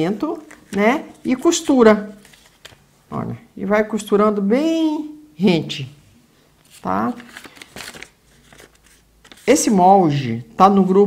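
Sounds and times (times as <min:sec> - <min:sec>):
paper and fabric rustling: 0:00.2 - 0:02.9, 0:06.6 - 0:09.8.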